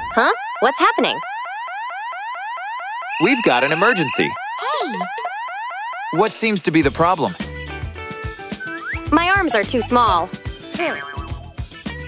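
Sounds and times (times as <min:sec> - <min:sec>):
electronic alarm whooping: 0:00.0 - 0:06.6.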